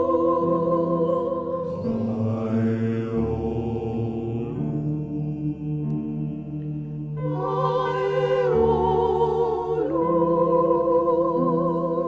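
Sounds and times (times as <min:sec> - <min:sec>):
voices chanting long low notes: 0:00.0 - 0:12.0.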